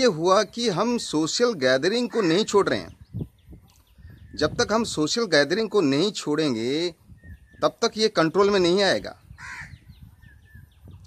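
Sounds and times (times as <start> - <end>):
loud bird call: 9.2 - 10.8.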